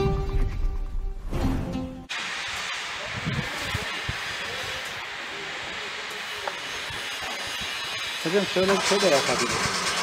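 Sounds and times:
outdoor background hiss: 1.8s - 10.0s.

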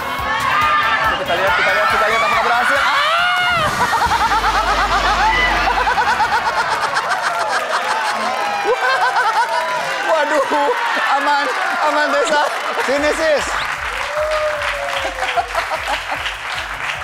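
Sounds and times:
people laughing: 1.0s - 10.7s, 14.4s - 16.9s
high-pitched laughter: 3.5s - 9.8s.

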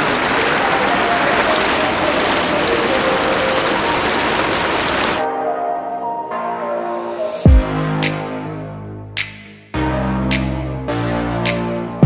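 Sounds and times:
water rushing over spillway: 0.0s - 5.2s.

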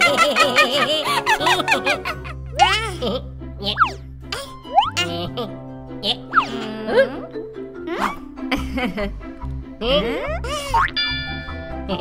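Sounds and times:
light children's music: 0.0s - 12.0s
gliding cartoon sound effects: 4.7s - 5.2s.

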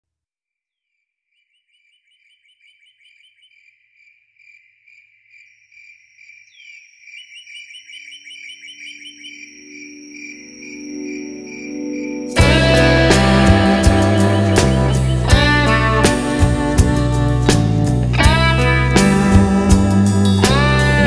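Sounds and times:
crickets chirping: 2.0s - 12.4s
low sustained musical notes: 8.8s - 21.0s.

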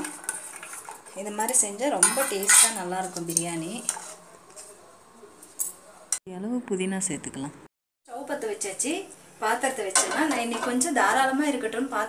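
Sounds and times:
woman talking: 6.3s - 12.0s.

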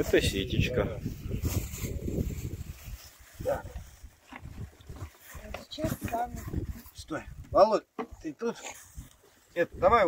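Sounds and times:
plastic and cardboard handling noise: 1.4s - 7.0s.

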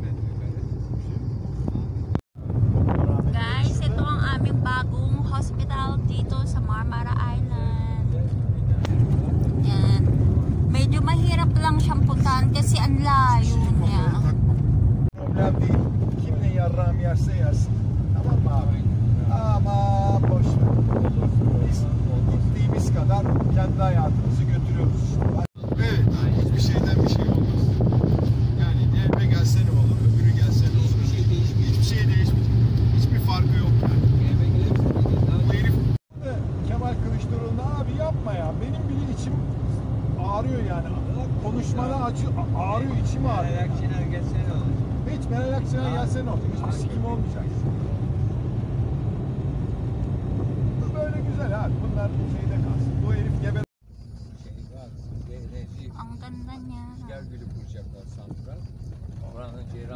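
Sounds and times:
car engine and road noise: 0.0s - 59.9s
people talking: 3.0s - 9.0s, 9.6s - 10.0s, 10.7s - 14.4s, 15.2s - 27.8s, 28.6s - 32.4s, 33.0s - 39.5s, 40.2s - 47.6s, 50.8s - 53.7s, 54.3s - 59.9s.

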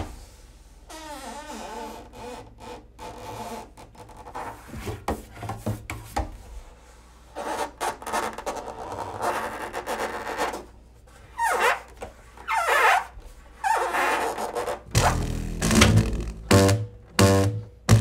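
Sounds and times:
hands rasping on double bass body: 12.8s - 18.0s.

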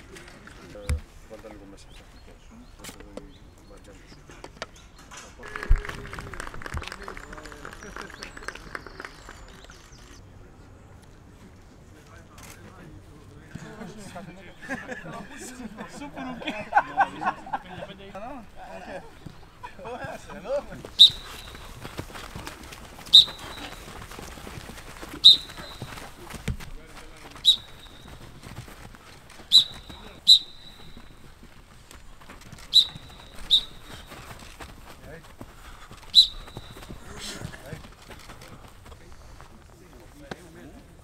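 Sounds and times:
coach's whistle toots: 20.9s - 22.0s, 23.0s - 24.0s, 25.1s - 26.2s, 27.4s - 28.4s, 29.4s - 31.3s, 32.6s - 34.4s, 36.1s - 37.0s.

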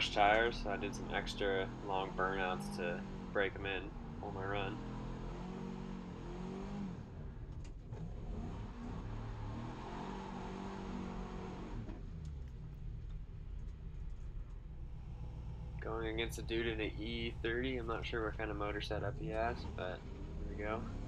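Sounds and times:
car engine revving: 0.0s - 21.0s.

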